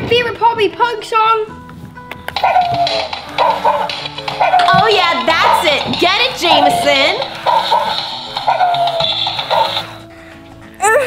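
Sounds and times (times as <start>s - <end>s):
electronic tune with high voice: 4.4s - 7.8s.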